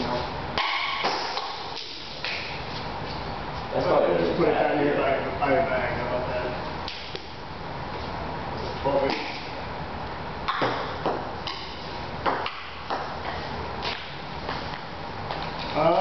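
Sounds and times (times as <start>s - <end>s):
table tennis ball hits: 0.6s - 2.5s, 10.5s - 13.2s.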